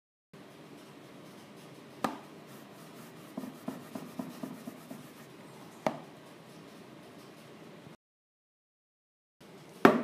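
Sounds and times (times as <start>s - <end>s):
eraser scrubbing on tabletop: 2.4s - 5.3s.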